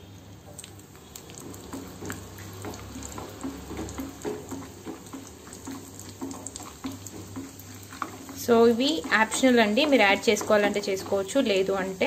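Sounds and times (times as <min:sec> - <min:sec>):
nuts frying in hot oil: 0:00.0 - 0:12.0
oil bubbling and popping: 0:00.0 - 0:12.0.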